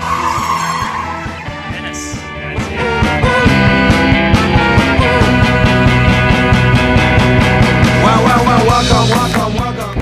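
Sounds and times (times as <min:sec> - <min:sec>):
rock music with steady beat: 0:00.0 - 0:10.0.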